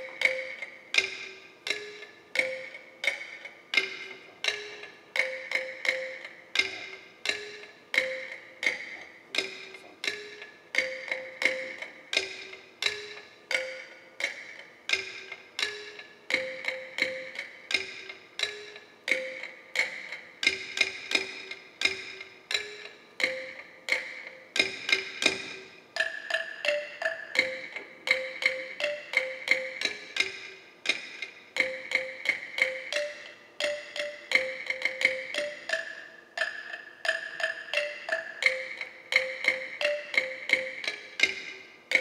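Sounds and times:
pitched percussion music: 0.0s - 42.0s.

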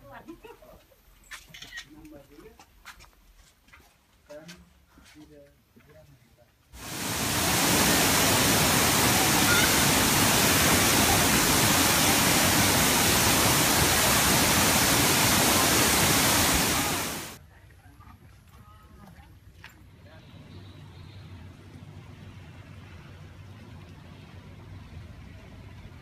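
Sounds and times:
water rushing: 6.8s - 17.4s.

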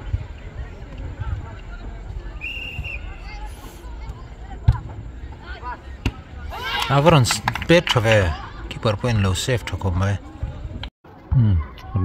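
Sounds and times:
referee's whistle: 2.4s - 3.4s
players shouting: 2.4s - 9.9s.

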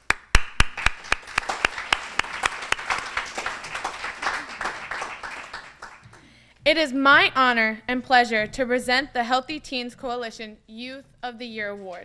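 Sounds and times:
loud single claps: 0.0s - 6.2s
audience applauding: 0.1s - 6.3s.

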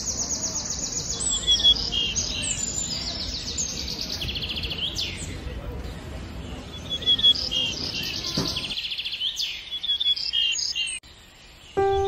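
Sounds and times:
songbirds trilling and whistling: 0.0s - 12.0s
music: 11.8s - 12.0s.

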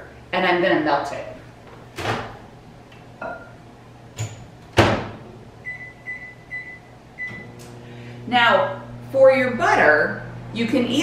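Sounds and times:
microwave humming: 1.4s - 11.0s.

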